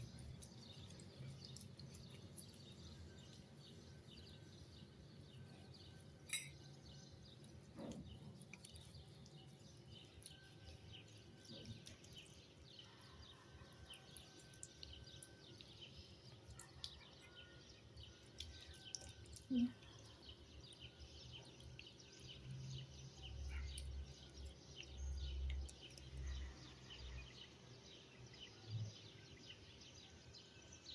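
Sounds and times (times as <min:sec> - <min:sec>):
stirring thick paste: 0:00.0 - 0:19.4
faint birds chirping: 0:00.0 - 0:30.9
spoon clinking ceramic bowl: 0:06.3 - 0:06.7.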